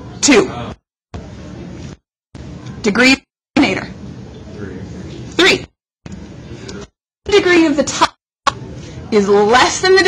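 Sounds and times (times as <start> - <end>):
murmur of faint voices: 8.5 - 10.0.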